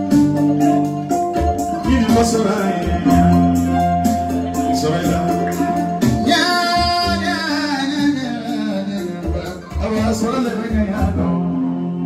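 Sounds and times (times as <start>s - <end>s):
kora plucked: 0.0s - 10.2s
person singing: 1.4s - 12.0s.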